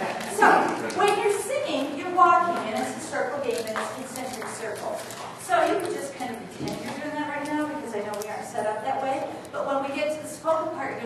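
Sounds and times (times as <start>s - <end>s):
woman's voice: 0.3s - 11.0s.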